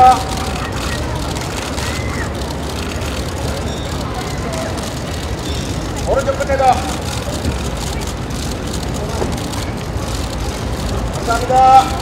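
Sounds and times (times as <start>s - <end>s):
faint voices murmuring: 0.0s - 12.0s
street noise: 0.0s - 12.0s.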